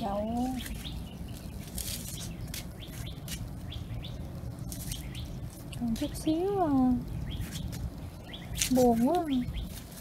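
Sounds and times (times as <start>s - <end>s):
small birds chirping: 0.0s - 10.0s
steady low rumble: 0.0s - 10.0s.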